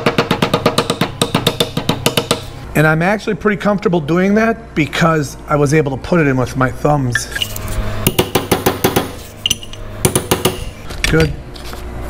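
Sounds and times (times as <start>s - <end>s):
hammer tapping steel bar: 0.0s - 2.5s.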